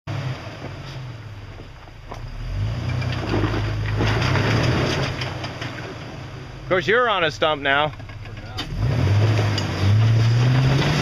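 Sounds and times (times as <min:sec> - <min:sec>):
engine crawling over rocks: 0:00.2 - 0:11.0.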